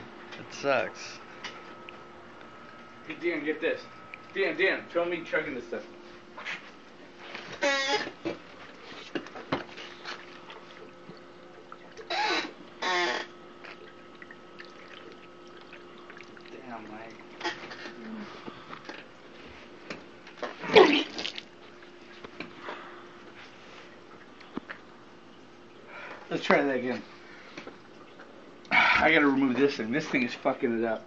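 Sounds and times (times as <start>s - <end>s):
steady hum: 0.0s - 31.0s.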